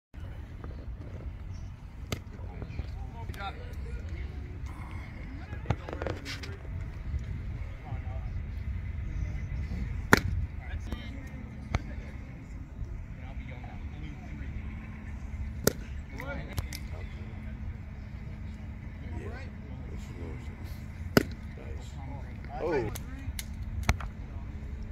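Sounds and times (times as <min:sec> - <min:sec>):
wind rumbling on microphone: 0:00.1 - 0:18.9
scattered voices: 0:00.2 - 0:24.9.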